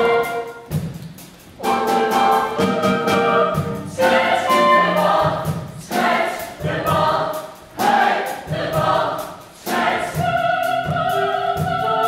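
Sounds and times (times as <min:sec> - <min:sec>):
choir singing: 0:00.0 - 0:00.7, 0:01.6 - 0:12.0.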